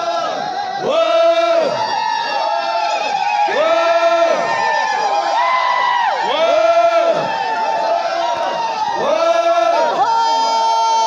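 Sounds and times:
crowd of men chanting: 0.0 - 11.0.

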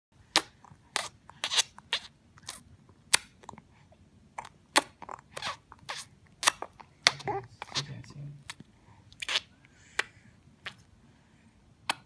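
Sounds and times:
baby smacking lips: 0.3 - 10.9.

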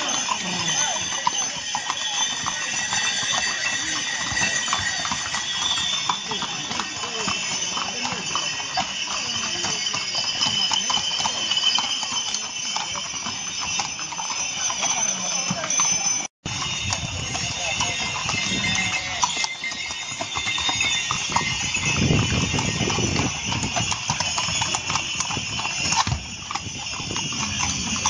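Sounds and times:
horse hooves on stone street: 0.0 - 28.0.

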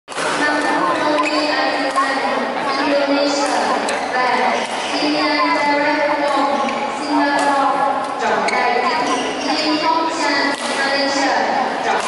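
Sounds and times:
murmur of spectator voices: 0.4 - 12.0
racket striking shuttlecock: 5.6 - 7.6, 10.4 - 10.8.

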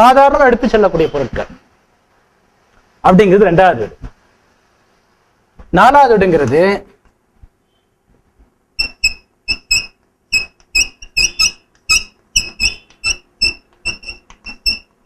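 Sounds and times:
chalk squeaking on blackboard: 8.8 - 15.0.

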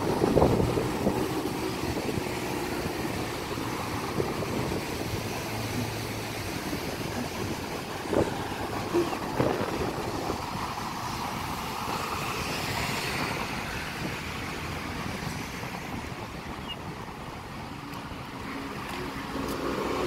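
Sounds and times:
road traffic noise: 0.0 - 20.0.

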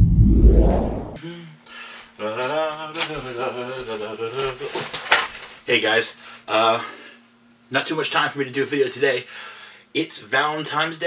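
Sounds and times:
man singing wordless tune: 2.2 - 4.9.

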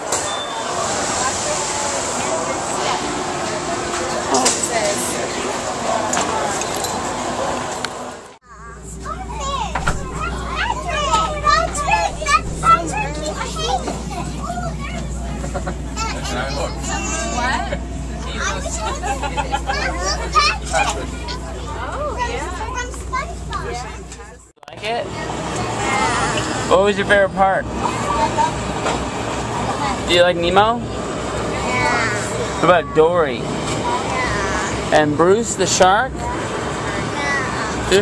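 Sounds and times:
children chattering and calling out: 0.0 - 38.0
moving vehicle rumble: 0.0 - 38.0
people's voices: 0.0 - 38.0.

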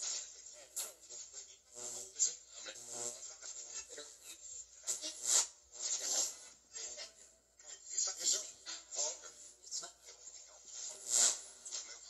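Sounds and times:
choppy bursts of raspy static: 0.0 - 7.2, 7.9 - 12.0.

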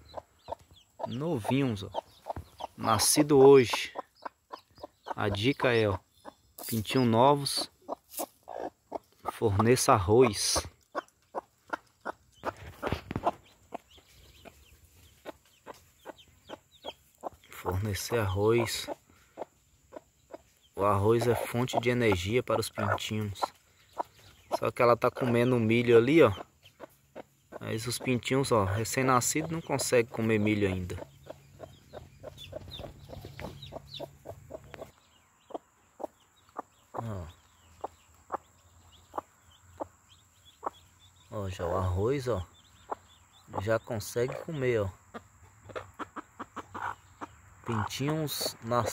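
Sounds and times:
chicks peeping: 0.0 - 48.9
hen clucking: 0.0 - 48.9
hen pecking quick sharp taps: 0.1 - 20.5, 29.4 - 39.9.

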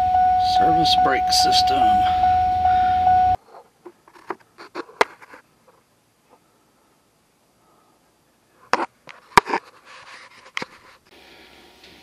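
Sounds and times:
high electronic tone: 0.0 - 3.4
low hum: 0.0 - 3.4.

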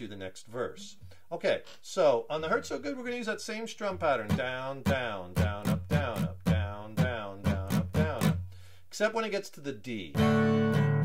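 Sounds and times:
acoustic guitar strumming: 4.0 - 8.6, 10.2 - 11.0.

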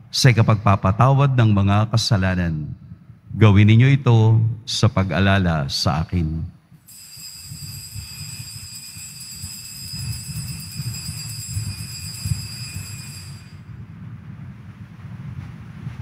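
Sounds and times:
altar bells ringing: 6.9 - 13.8
steady low rumble: 8.7 - 16.0.

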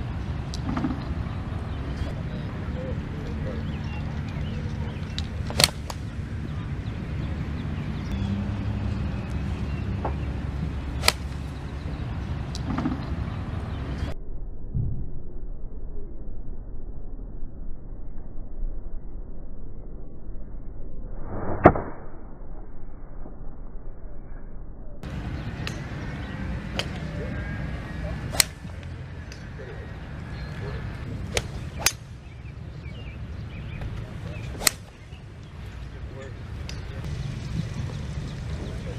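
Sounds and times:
golf club striking ball: 5.1 - 6.1, 11.0 - 11.4, 28.3 - 29.4, 31.3 - 32.1, 34.6 - 35.0
golf club swishing: 5.5 - 6.0, 11.0 - 11.6, 28.2 - 29.0, 31.1 - 32.1, 34.0 - 35.1
wind rumble on microphone: 25.0 - 38.9.

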